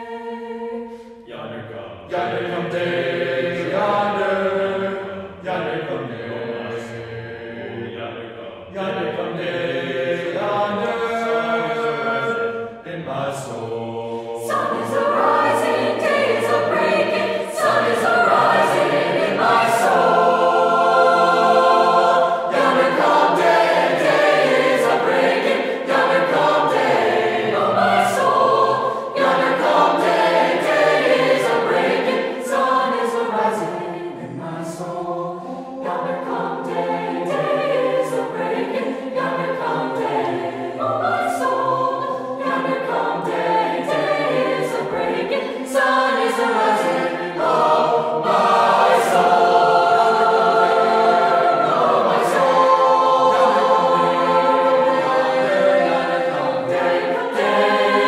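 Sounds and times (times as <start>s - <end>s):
choir singing in harmony: 0.0s - 58.0s.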